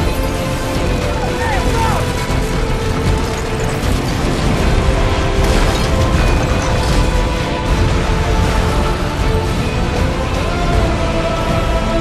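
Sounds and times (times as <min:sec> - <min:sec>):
debris clattering and grinding: 0:00.0 - 0:10.8
music: 0:00.0 - 0:12.0.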